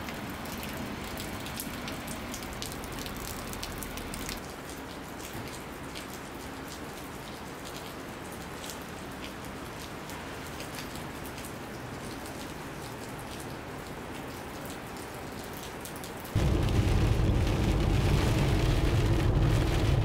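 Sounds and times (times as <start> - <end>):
pouring rain: 0.0 - 20.0.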